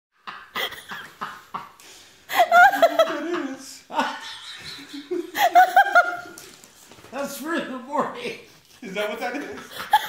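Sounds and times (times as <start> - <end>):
person laughing in breathy bursts: 0.2 - 6.4, 9.6 - 10.0.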